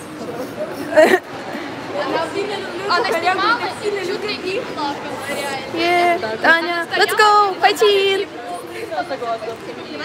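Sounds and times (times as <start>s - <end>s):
women chatting: 1.9s - 8.6s.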